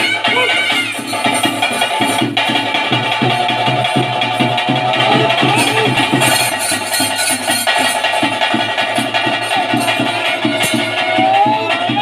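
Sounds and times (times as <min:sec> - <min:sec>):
rapid steady drumming: 0:00.0 - 0:12.0.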